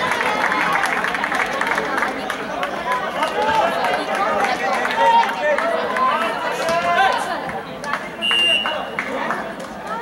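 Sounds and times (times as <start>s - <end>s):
crowd chattering and calling out: 0.0s - 10.0s.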